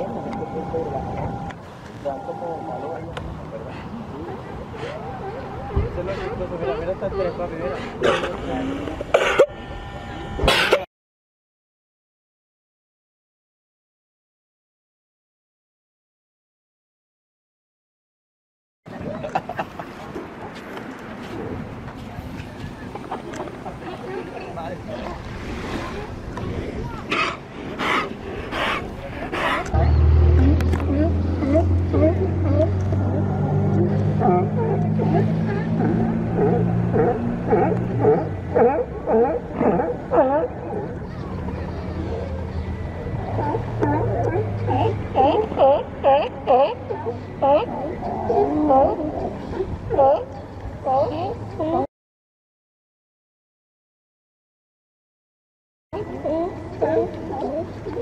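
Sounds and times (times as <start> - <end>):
sea lions barking: 27.0 - 41.2, 41.8 - 51.9, 56.0 - 58.0
sea lions calling harshly: 43.1 - 51.9, 56.0 - 58.0.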